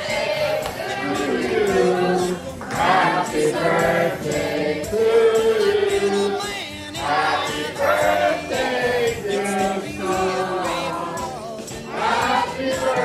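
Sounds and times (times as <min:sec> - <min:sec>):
choir singing long held notes: 0:00.0 - 0:06.4, 0:07.0 - 0:13.0.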